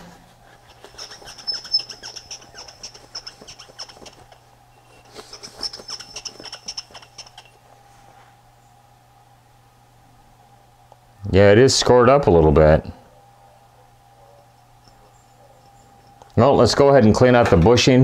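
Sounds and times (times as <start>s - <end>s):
paper towel squeaking on metal shaft: 0.5s - 7.6s.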